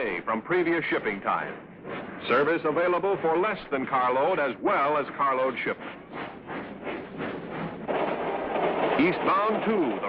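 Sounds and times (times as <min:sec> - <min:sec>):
freight train on rails: 0:00.0 - 0:10.0.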